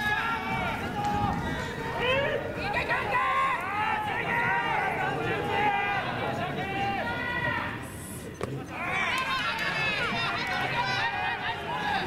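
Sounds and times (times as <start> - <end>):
crowd shouting cheers: 0.0 - 8.0, 8.6 - 12.0.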